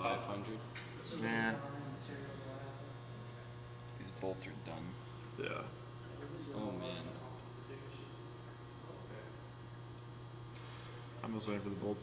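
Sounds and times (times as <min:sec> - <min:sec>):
testing machine electrical hum: 0:00.0 - 0:12.0.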